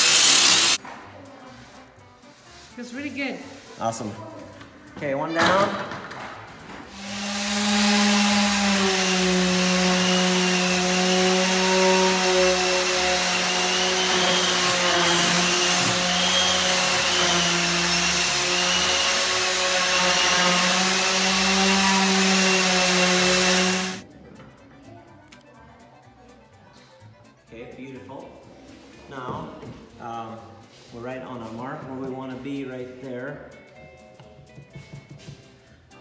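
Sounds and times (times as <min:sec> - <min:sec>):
electric power tool motor running: 0:06.9 - 0:24.0.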